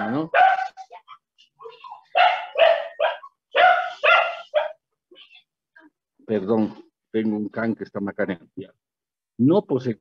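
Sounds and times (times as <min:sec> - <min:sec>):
dog barking: 0:00.3 - 0:00.8, 0:02.1 - 0:04.8.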